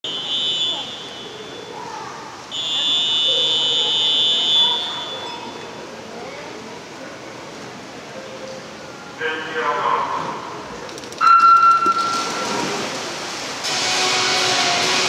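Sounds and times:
referee's whistle blasts: 0.0s - 1.8s, 2.5s - 5.5s.

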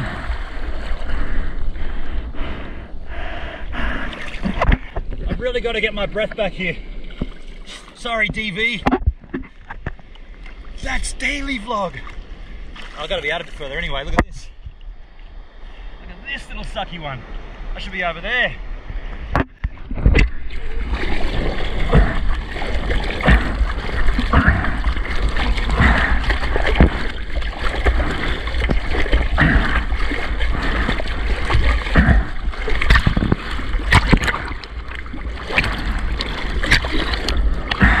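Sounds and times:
water splashing along a surfboard: 0.0s - 2.8s, 3.8s - 11.0s, 19.1s - 38.0s
steady low rumble: 0.0s - 7.2s, 7.8s - 38.0s.

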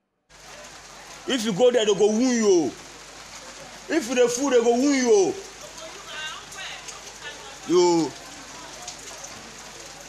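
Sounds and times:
background hiss: 0.3s - 10.0s.

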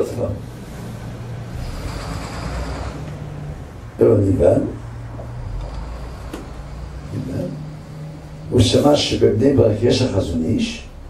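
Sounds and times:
room noise hum and rumble: 0.0s - 11.0s.

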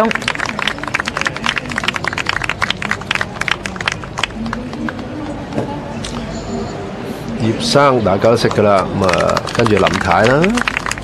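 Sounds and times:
small group applauding: 0.0s - 5.0s, 8.4s - 11.0s.

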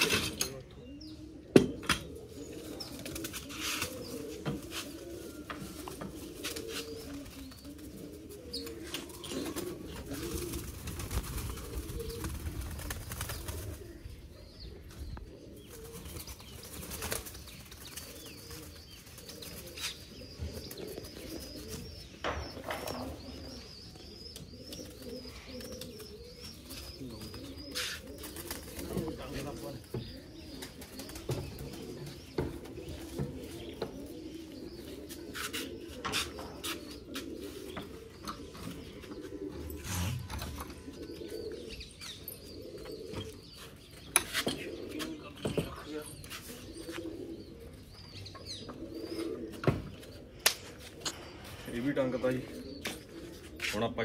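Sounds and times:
pigeons cooing: 0.0s - 54.0s.

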